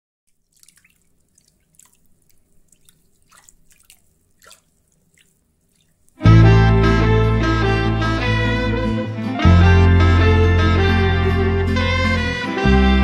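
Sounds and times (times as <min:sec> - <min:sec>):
water drips: 0:00.3 - 0:06.3.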